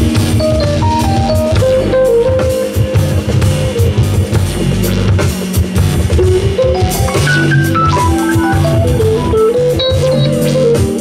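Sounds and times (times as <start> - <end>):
drum kit hits: 0.0 - 11.0
keyboard line: 0.0 - 11.0.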